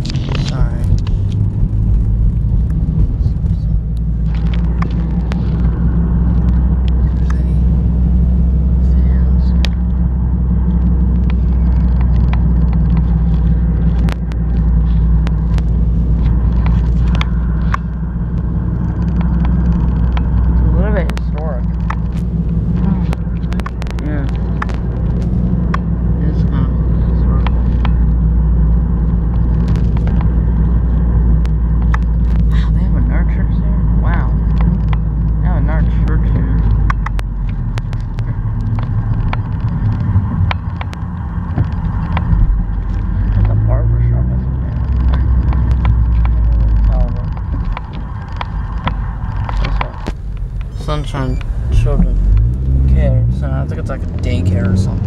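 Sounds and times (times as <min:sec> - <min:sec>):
car engine and tyres droning: 0:00.0 - 0:55.0
sharp clicks: 0:11.1 - 0:26.0, 0:34.3 - 0:43.6, 0:44.4 - 0:52.8.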